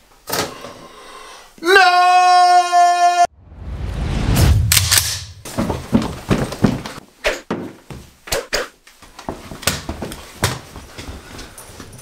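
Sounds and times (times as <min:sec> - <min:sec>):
man screaming: 0:01.6 - 0:03.3
low rumbling swell: 0:03.3 - 0:05.5
sharp clicks or knocks: 0:04.6 - 0:05.6.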